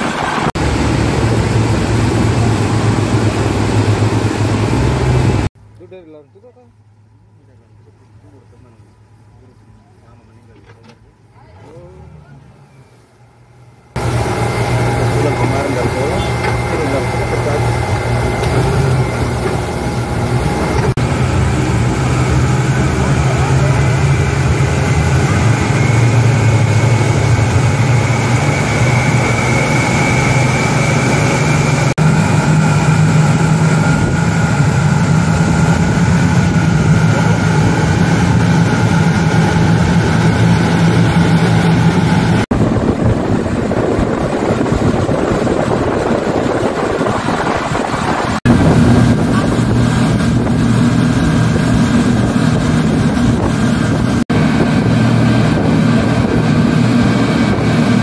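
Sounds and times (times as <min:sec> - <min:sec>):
outboard motors droning: 0:00.0 - 0:58.0.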